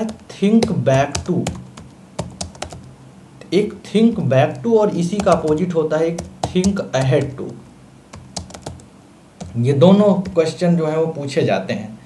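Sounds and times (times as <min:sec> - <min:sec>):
man talking: 0:00.0 - 0:01.7, 0:03.4 - 0:07.6, 0:09.5 - 0:12.0
keyboard keystroke clicks: 0:00.0 - 0:02.9, 0:05.2 - 0:05.6, 0:06.2 - 0:09.6.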